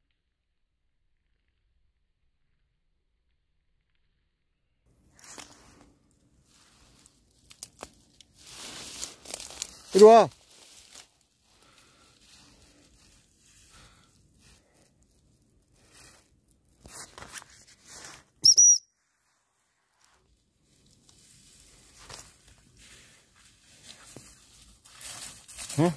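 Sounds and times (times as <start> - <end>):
dry reeds rustling: 5.0 - 18.3, 19.8 - 25.9
short high whistle: 18.4 - 18.9.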